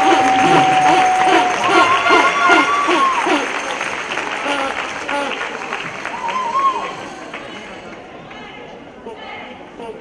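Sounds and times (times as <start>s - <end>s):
audience applauding: 0.0s - 7.7s.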